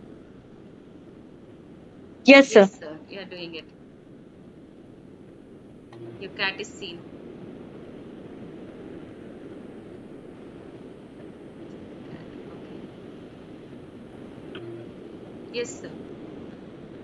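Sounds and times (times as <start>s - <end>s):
low microphone hiss: 0.0s - 17.0s.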